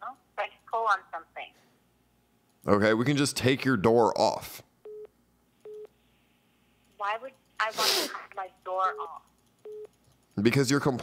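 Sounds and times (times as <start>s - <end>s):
short electronic beeps: 9.6s - 9.9s.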